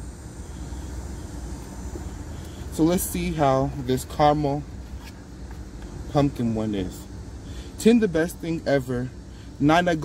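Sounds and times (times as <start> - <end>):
car engine idling: 0.0 - 10.0
ventilation fan hiss: 0.0 - 10.0.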